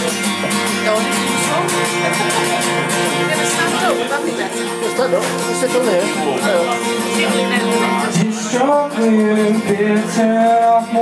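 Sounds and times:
acoustic guitar strummed: 0:00.0 - 0:11.0
man singing: 0:04.7 - 0:11.0.

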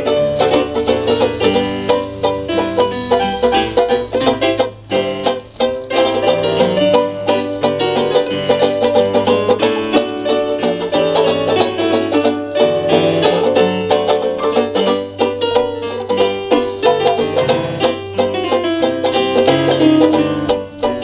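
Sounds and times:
banjo plucking: 0:00.0 - 0:21.0
piano chords: 0:00.0 - 0:21.0.

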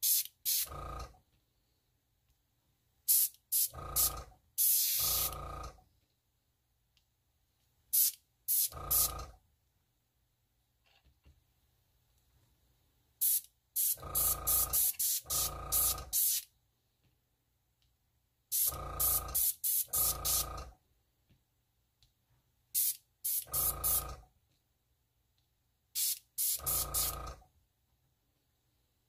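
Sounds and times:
airbrush spurts: 0:00.0 - 0:00.8, 0:03.1 - 0:05.4, 0:07.9 - 0:09.3, 0:13.2 - 0:16.5, 0:18.5 - 0:20.7, 0:22.8 - 0:24.2, 0:26.0 - 0:27.4
airbrush hum: 0:03.1 - 0:05.4, 0:13.2 - 0:16.4, 0:18.5 - 0:20.6, 0:22.8 - 0:24.2, 0:26.0 - 0:27.4.

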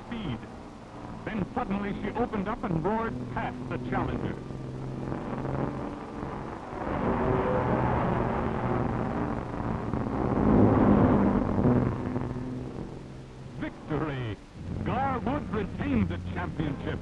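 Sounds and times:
speedboat engine drone: 0:00.0 - 0:17.0.

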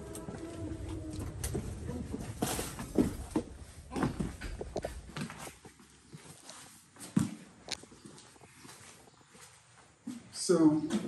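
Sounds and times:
footsteps on bare floor: 0:00.0 - 0:11.0.

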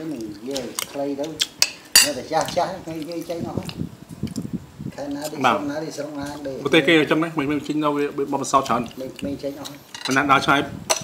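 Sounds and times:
metal spoon clinking on dishes: 0:01.6 - 0:02.5.

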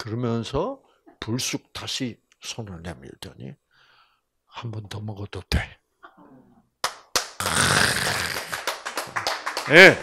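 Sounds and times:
sharp hand claps: 0:06.8 - 0:10.0
audience applause: 0:07.5 - 0:10.0.

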